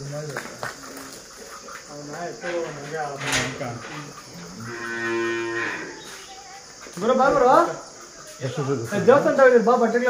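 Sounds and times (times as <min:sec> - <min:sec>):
bull lowing: 0:03.7 - 0:06.1.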